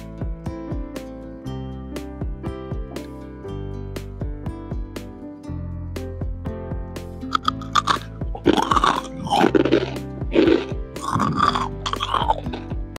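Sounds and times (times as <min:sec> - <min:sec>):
soft background music: 0:00.0 - 0:13.0
crunchy chewing: 0:07.3 - 0:12.8.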